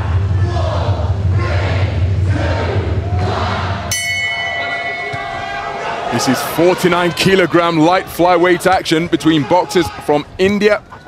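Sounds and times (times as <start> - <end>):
music: 0.0 - 5.4
arena crowd noise: 0.0 - 11.0
boxing ring bell ringing: 3.9 - 6.3.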